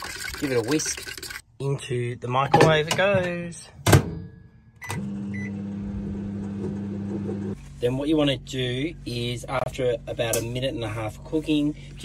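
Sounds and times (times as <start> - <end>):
microwave beep: 4.8 - 5.9
microwave oven humming: 4.8 - 7.5.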